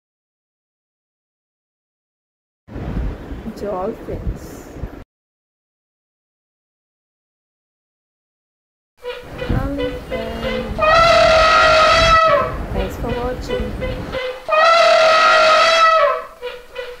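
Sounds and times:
horn-like blasts: 9.0 - 17.0
shorter tones: 9.0 - 17.0.

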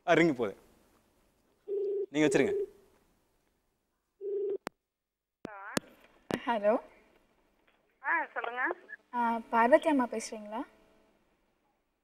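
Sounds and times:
telephone ringback tone: 1.7 - 2.7, 4.2 - 4.6.

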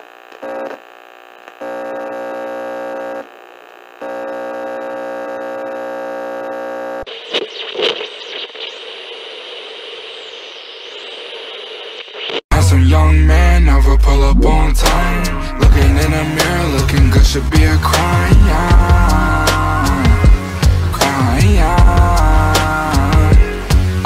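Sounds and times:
electronic buzzing tone: 0.0 - 12.4
radio static with sweeping whistle: 7.0 - 12.5.

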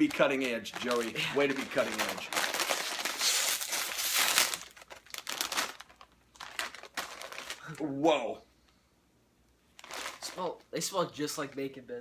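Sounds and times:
plastic chip bag crinkling: 0.0 - 8.0, 9.7 - 10.6.

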